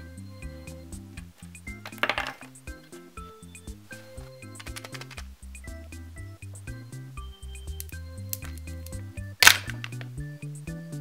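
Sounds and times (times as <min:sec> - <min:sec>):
background music with bass: 0:00.0 - 0:11.0.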